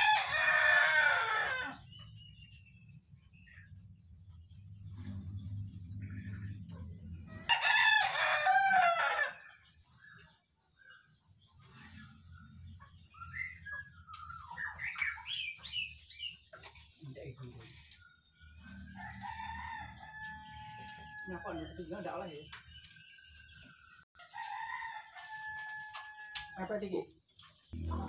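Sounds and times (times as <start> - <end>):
rooster crowing: 0.0 - 1.8, 7.4 - 9.4, 24.3 - 26.5
bird chirps: 9.9 - 18.8.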